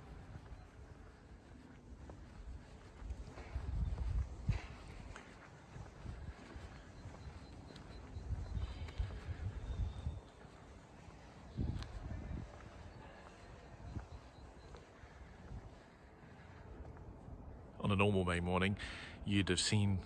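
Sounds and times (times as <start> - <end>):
footsteps on pavement: 0.0 - 17.7.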